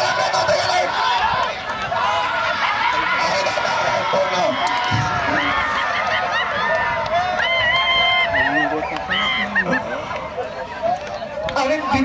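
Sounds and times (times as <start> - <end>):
people calling out and chattering: 0.0 - 12.0.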